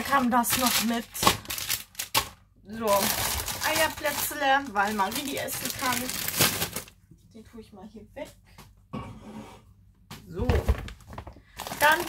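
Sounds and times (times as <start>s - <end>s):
packet rustling: 0.0s - 7.0s, 10.9s - 12.0s.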